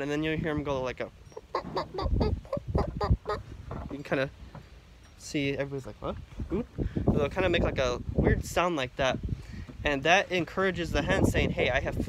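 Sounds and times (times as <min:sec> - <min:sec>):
person imitating rooster clucks: 0:01.4 - 0:03.5.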